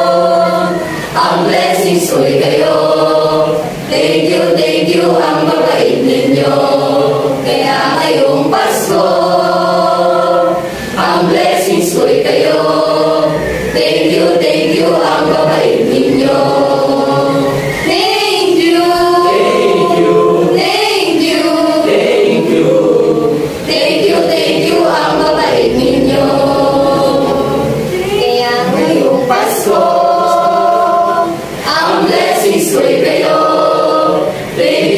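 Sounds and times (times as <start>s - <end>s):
choir of young voices singing: 0.0s - 34.9s.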